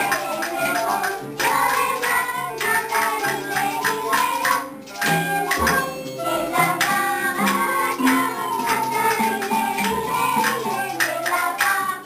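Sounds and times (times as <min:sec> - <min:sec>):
children singing: 0:00.0 - 0:12.0
instrumental accompaniment: 0:00.0 - 0:12.0
percussion beat: 0:00.0 - 0:12.0.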